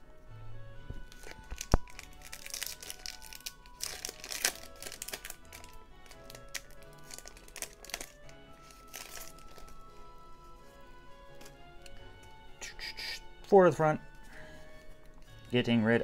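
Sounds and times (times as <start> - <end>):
background music: 0.0 - 16.0
foil wrapper crinkling and tearing: 1.1 - 9.9.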